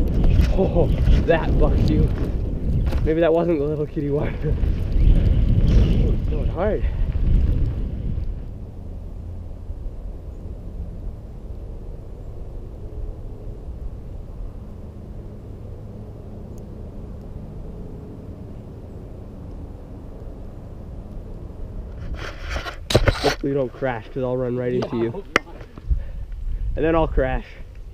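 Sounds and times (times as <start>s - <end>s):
bike tyre rumble on dirt: 0.0s - 10.4s
faint hum: 0.0s - 27.9s
wind: 0.0s - 27.9s.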